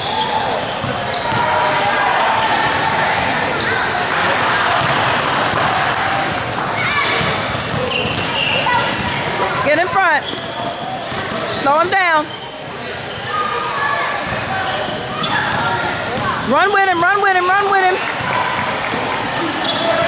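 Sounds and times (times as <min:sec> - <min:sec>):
shoes squeaking on court floor: 0:00.0 - 0:01.7, 0:03.3 - 0:20.0
voices echoing: 0:00.0 - 0:20.0.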